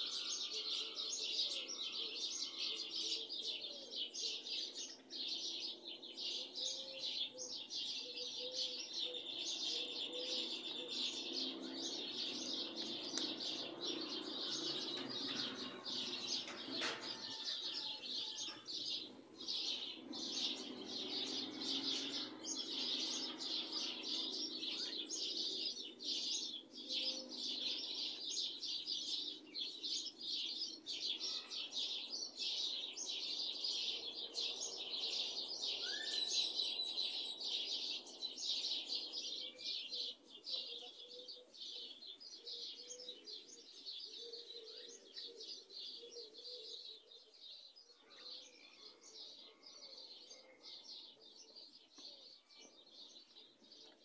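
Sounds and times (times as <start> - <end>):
small birds chirping: 0.0 - 54.0.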